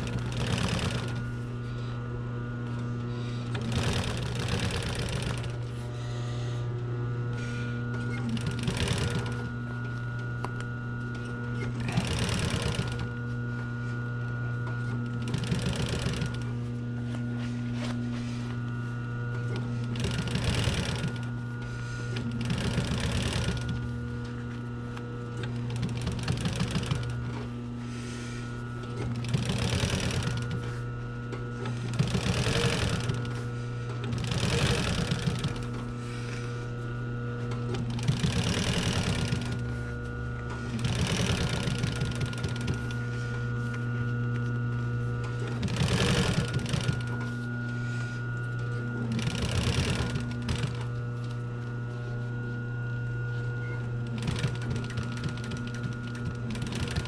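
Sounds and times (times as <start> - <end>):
sewing machine stitching leather: 0.0 - 1.4, 3.5 - 5.8, 8.0 - 9.6, 11.2 - 13.2, 14.6 - 16.6, 19.3 - 21.4, 22.1 - 24.5, 25.3 - 27.5, 28.7 - 30.8, 31.6 - 36.5, 37.4 - 43.7, 45.2 - 47.4, 48.6 - 51.4, 53.6 - 57.0
sewing machine motor humming: 0.0 - 57.0.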